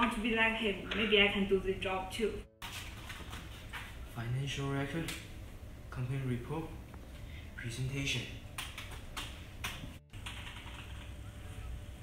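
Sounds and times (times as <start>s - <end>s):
papers rustling and clicking: 2.6s - 4.0s.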